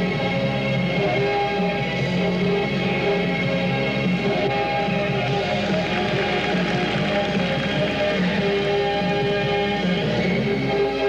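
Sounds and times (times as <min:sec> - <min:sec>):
instrumental music with held notes: 0:00.0 - 0:11.0.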